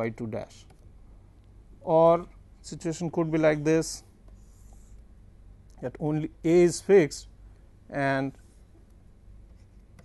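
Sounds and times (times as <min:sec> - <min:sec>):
stylus scratching on tablet: 0:04.3 - 0:05.0.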